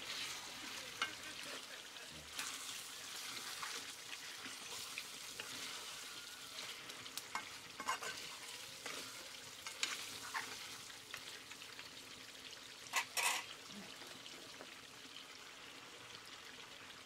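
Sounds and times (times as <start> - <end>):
curry sizzling and bubbling: 0.0 - 17.0
metal spoon scraping pan: 0.1 - 1.7, 2.3 - 10.8, 12.9 - 13.5.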